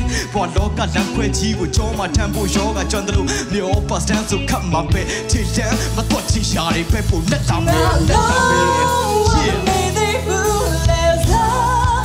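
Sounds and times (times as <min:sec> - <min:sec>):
live band playing: 0:00.0 - 0:12.0
person singing with vibrato: 0:00.0 - 0:12.0.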